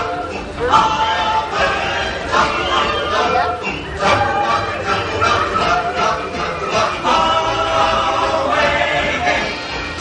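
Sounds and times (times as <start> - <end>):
chorus of voices singing: 0.0 - 10.0.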